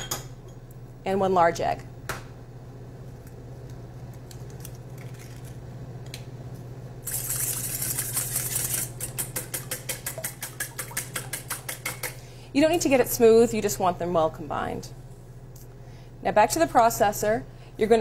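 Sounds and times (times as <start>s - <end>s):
whisk beating in metal bowl: 7.1s - 12.2s.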